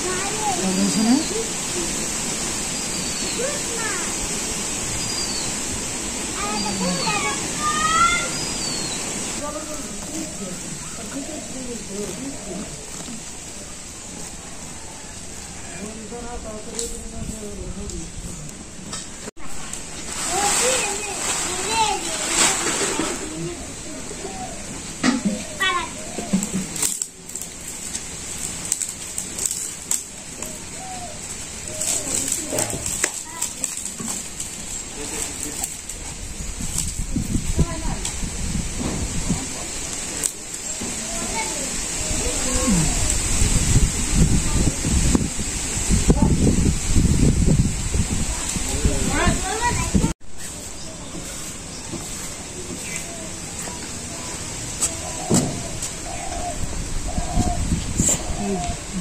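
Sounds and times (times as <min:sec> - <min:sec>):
bamboo strips clicking and knocking: 0:26.2 - 0:30.6, 0:31.6 - 0:36.0.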